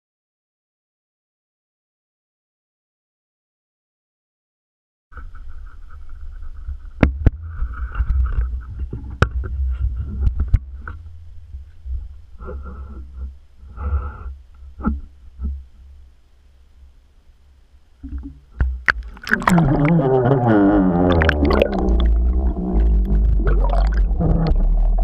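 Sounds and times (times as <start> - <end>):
low rumble: 18.8 - 25.0.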